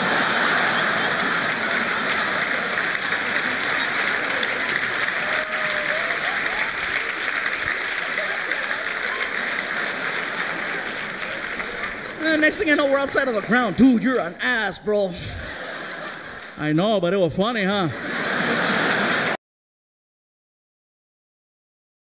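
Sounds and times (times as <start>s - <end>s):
audience applauding: 0.0s - 19.4s.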